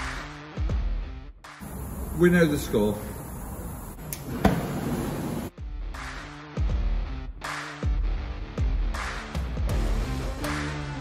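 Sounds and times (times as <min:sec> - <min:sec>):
gas cutting torch hissing: 0:01.6 - 0:05.5.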